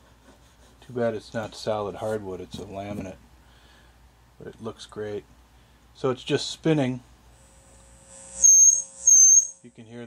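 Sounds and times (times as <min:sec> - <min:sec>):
faint speaker hum: 0:00.4 - 0:08.1
high-pitched feedback squeal: 0:08.0 - 0:09.7.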